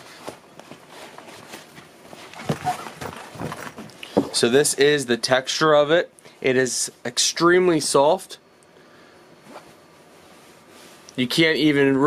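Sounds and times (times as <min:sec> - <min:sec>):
soft fabric rustling: 0:00.0 - 0:04.5, 0:09.4 - 0:11.5
plastic case crinkling: 0:01.5 - 0:04.4.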